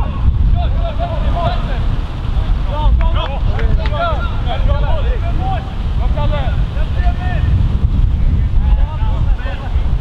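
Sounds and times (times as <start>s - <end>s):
distant players shouting: 0.0s - 4.7s
wind buffeting microphone: 0.0s - 10.0s.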